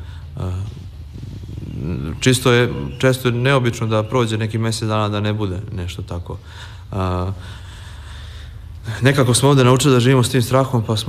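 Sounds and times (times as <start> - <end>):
man breathing in: 0.0 - 1.8, 6.4 - 8.8.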